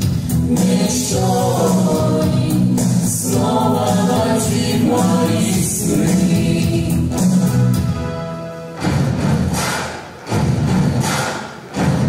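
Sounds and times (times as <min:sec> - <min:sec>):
steady low notes: 0:00.0 - 0:12.0
mixed choir singing in harmony: 0:00.4 - 0:07.4.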